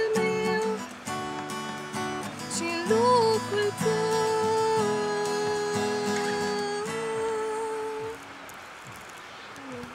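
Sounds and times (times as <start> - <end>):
acoustic guitar chord ringing: 0.0 - 8.1.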